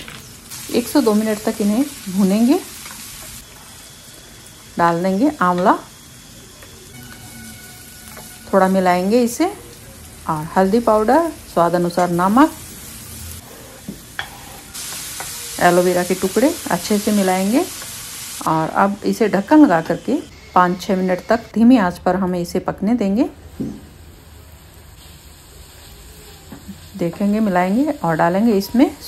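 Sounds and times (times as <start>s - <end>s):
vegetables sizzling in hot oil: 0.0s - 29.0s
spatula stirring in pan: 13.4s - 15.4s.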